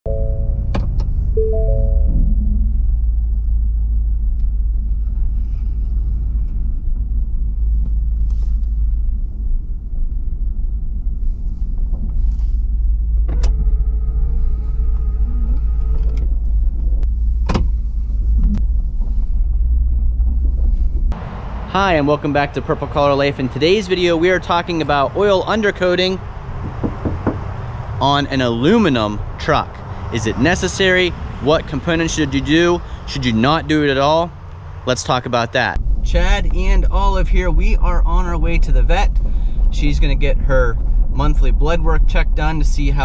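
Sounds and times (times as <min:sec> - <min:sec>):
truck engine rumble: 0:00.0 - 0:43.0
short tones: 0:01.3 - 0:02.7
held chord of tones: 0:01.4 - 0:02.2.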